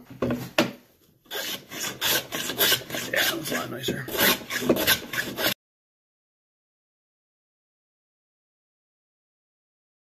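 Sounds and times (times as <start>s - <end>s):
hand plane scraping wood: 1.3s - 5.6s.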